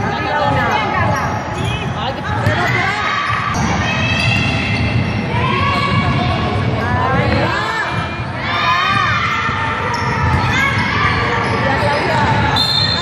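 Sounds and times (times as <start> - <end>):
basketball bouncing: 1.6 - 11.1
referee whistle blast: 12.6 - 13.0.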